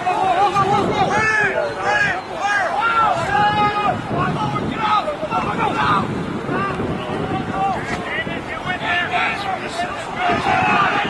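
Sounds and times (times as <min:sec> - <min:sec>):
people shouting and calling out: 0:00.0 - 0:11.0.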